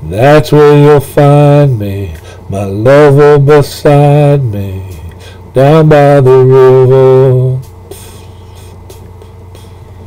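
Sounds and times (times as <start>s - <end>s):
low hum with faint hiss: 0.0s - 10.0s.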